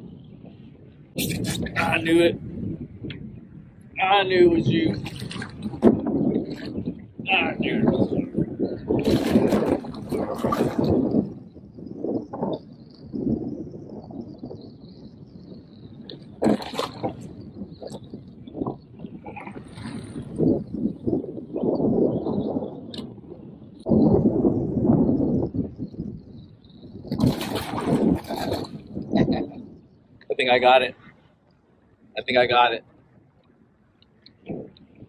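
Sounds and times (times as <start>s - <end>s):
water splashing against kayak: 4.9s - 8.1s, 8.9s - 11.4s, 16.2s - 18.0s, 27.1s - 29.4s.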